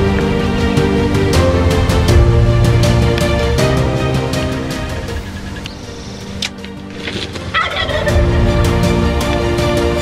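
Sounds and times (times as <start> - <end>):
turkey gobbling: 7.0 - 8.3.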